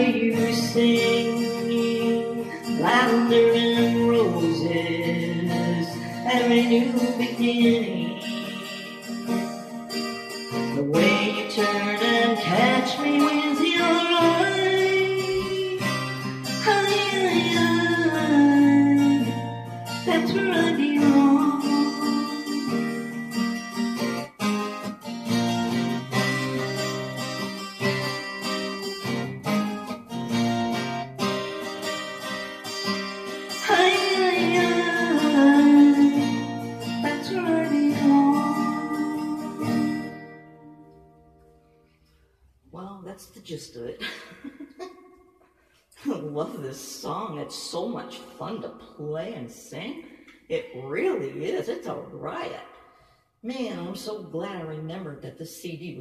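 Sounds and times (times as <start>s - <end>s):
person singing: 0.0s - 9.6s, 10.5s - 24.2s, 32.7s - 41.0s
acoustic guitar strumming: 0.0s - 44.0s, 44.6s - 56.0s.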